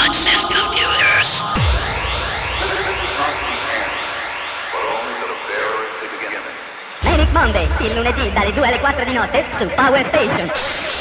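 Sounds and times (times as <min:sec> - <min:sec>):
siren-like synth sweeps: 0:00.0 - 0:10.6
warbling voice-like sounds: 0:00.5 - 0:11.0
bass: 0:07.0 - 0:09.8.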